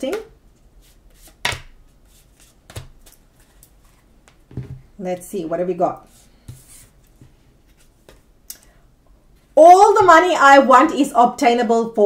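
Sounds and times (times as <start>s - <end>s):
cards being shuffled: 0.8s - 4.4s.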